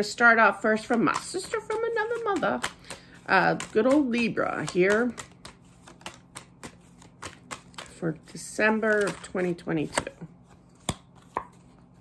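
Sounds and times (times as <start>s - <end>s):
cards tapped on table: 4.6s - 7.9s, 10.8s - 11.6s.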